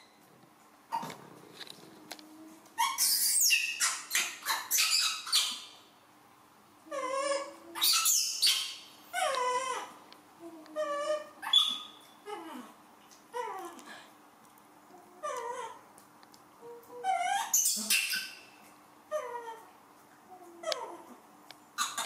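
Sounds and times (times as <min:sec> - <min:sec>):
young monkey crying: 0:06.9 - 0:10.0, 0:10.6 - 0:13.8, 0:16.7 - 0:18.4.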